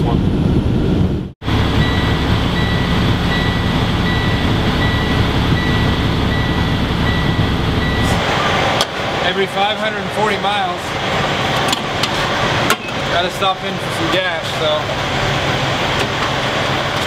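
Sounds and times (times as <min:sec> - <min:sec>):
heavy truck engine rumbling: 0:00.0 - 0:17.0
high electronic beeping: 0:01.5 - 0:08.6.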